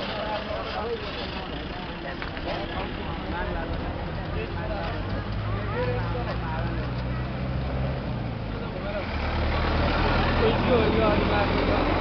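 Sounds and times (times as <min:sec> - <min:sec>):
many voices chattering: 0:00.0 - 0:12.0
vehicle engine humming: 0:00.0 - 0:12.0.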